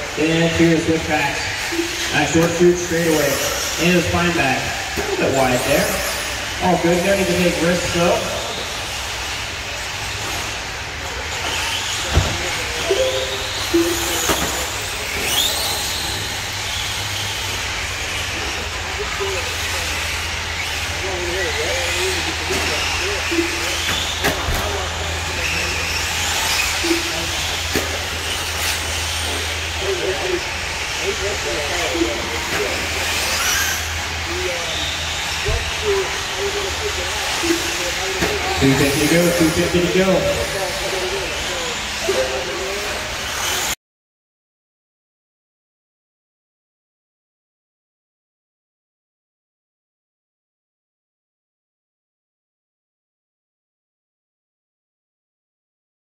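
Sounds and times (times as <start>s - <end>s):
rc truck motors whining: 0.0s - 43.8s.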